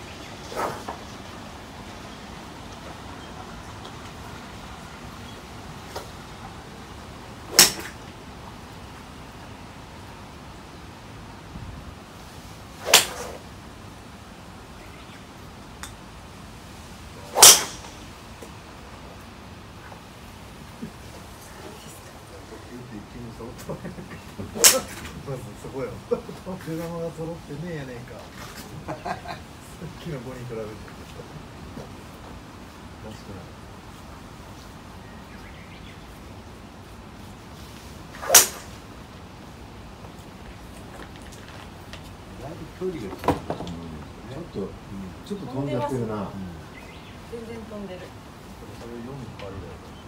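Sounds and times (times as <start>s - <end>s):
golf club swish: 0.4s - 0.9s, 7.5s - 8.0s, 12.8s - 13.4s, 17.2s - 18.1s, 24.6s - 25.1s, 38.1s - 38.8s
golf ball impact crack: 7.5s - 8.0s, 12.8s - 13.4s, 17.2s - 18.5s, 24.5s - 25.1s, 38.2s - 38.8s.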